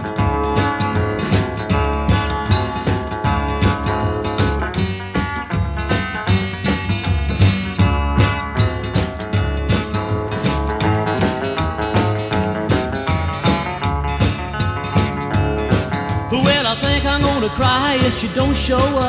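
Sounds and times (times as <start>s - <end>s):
rockabilly guitar over steady beat: 0.0s - 19.0s.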